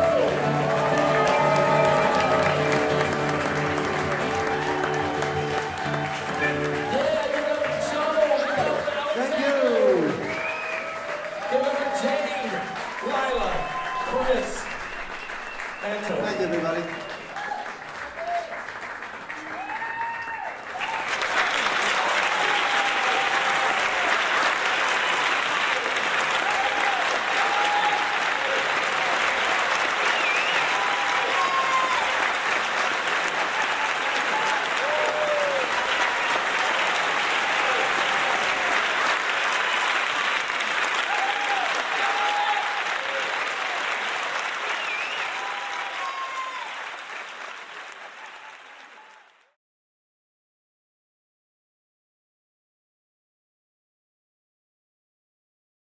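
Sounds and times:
audience applauding: 0:00.0 - 0:49.6.

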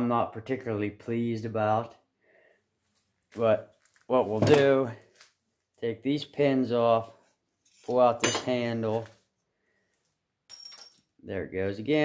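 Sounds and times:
metal pin dropping on floor: 0:10.5 - 0:11.1.

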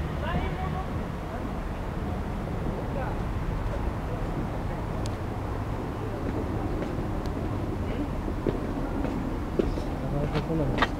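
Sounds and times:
distant train rumble: 0:00.0 - 0:10.9.

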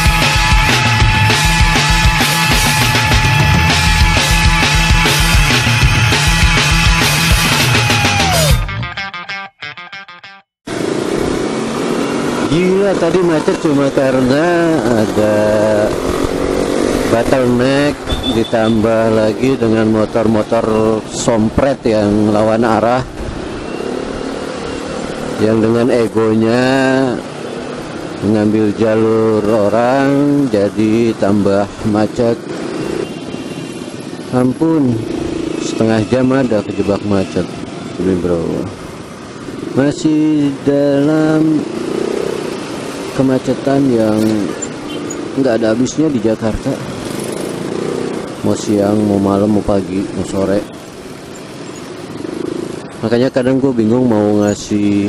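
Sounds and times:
road and traffic noise: 0:00.0 - 0:09.0, 0:10.6 - 0:55.0
scooter engine hum: 0:10.7 - 0:19.6, 0:23.1 - 0:25.5, 0:36.7 - 0:55.0.

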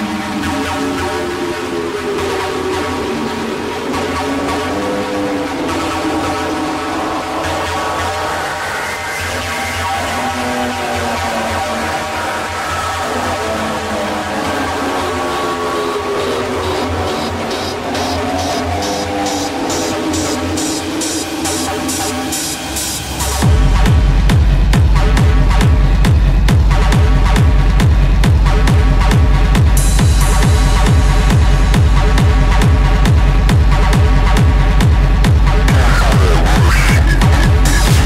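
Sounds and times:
hard techno music: 0:00.0 - 0:38.0
steady low bass: 0:16.3 - 0:38.0
deep kick drum: 0:23.4 - 0:38.0.

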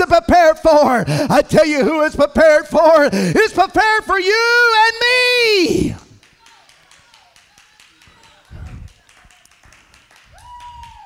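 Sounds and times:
congregation clapping: 0:05.6 - 0:11.0.

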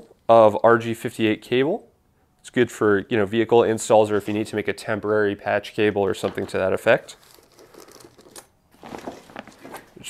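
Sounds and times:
crinkling and rustling: 0:06.2 - 0:10.0.

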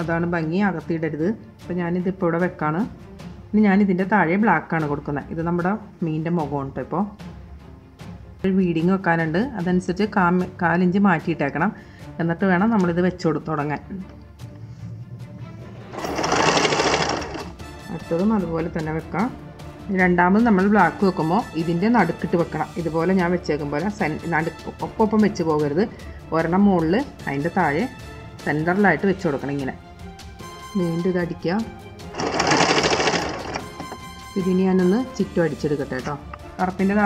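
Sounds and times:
sewing machine stitching: 0:15.6 - 0:17.6, 0:32.1 - 0:34.2.

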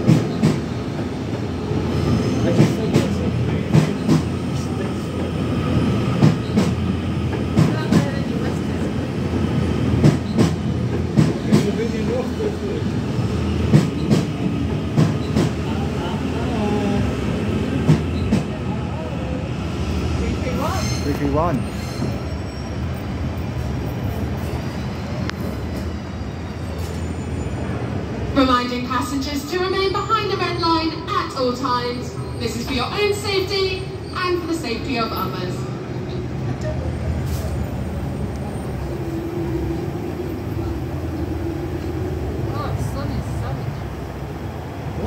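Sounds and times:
train low rumble: 0:00.0 - 0:45.0
electric train humming: 0:37.6 - 0:45.0.

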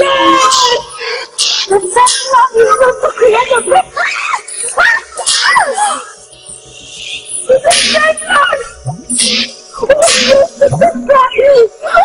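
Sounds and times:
voices screaming and wailing: 0:00.0 - 0:06.3.

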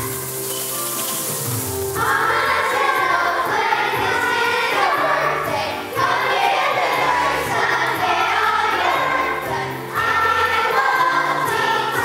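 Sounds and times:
instrumental accompaniment: 0:00.0 - 0:12.0
children's choir singing: 0:01.9 - 0:12.0.

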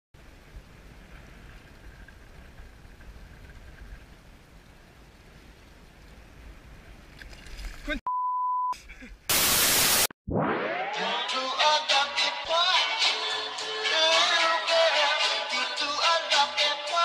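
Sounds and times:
muffled rumble of sea water: 0:00.2 - 0:07.8.

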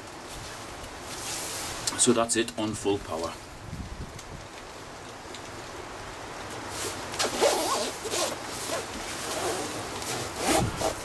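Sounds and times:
nylon fabric rustling: 0:00.2 - 0:01.9, 0:06.6 - 0:11.0
jacket zipper being pulled up: 0:06.7 - 0:11.0.

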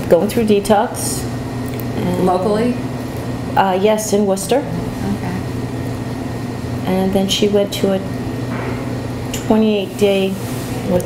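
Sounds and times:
low machine hum: 0:00.0 - 0:11.0
woman speaking: 0:02.0 - 0:02.9, 0:03.6 - 0:05.4, 0:06.8 - 0:08.1, 0:09.4 - 0:11.0.

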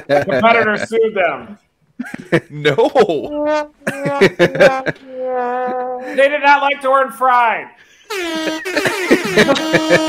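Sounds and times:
air horn: 0:03.3 - 0:05.6, 0:08.0 - 0:10.0.

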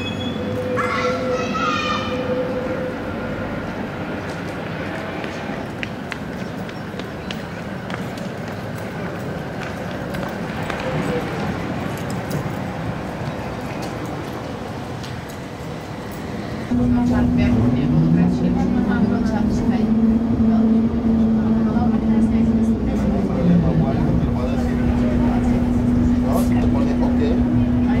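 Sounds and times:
low street rumble: 0:00.0 - 0:28.0
tram rolling to a stop: 0:00.0 - 0:28.0.

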